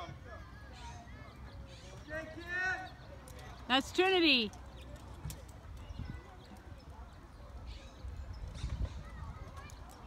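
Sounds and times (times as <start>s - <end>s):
faint distant voices: 0.0s - 10.0s
wind rumble on microphone: 5.2s - 10.0s.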